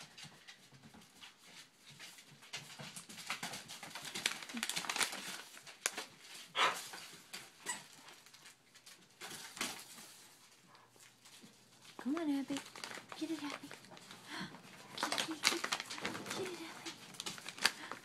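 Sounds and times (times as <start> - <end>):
dog tearing wrapping paper: 2.9 - 10.5, 11.4 - 18.0.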